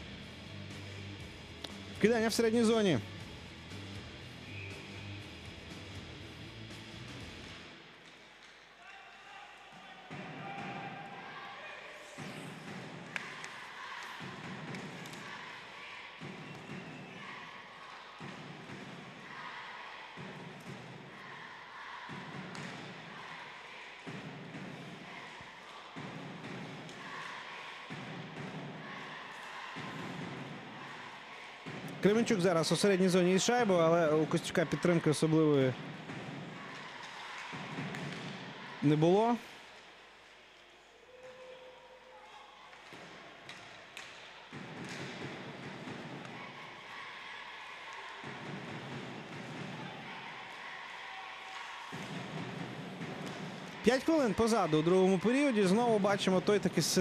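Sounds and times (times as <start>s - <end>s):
crowd voices: 7.7s - 57.0s.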